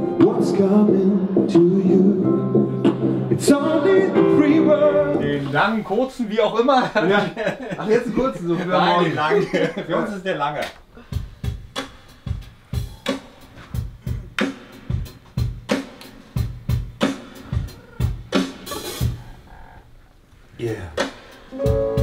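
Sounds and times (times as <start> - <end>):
pitched music: 0.0 - 5.5, 21.0 - 22.0
drum beat with kicks and snare: 10.6 - 19.3, 20.9 - 22.0.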